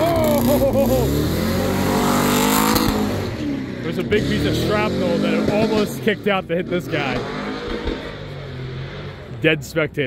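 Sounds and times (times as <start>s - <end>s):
car engines droning: 0.0s - 10.0s.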